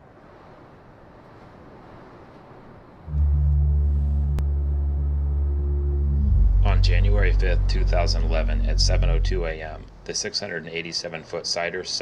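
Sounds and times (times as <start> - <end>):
deep booming drone: 3.1 - 10.2.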